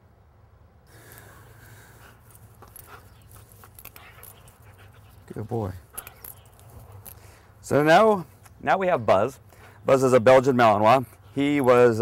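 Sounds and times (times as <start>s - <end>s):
dog panting: 1.7s - 7.2s.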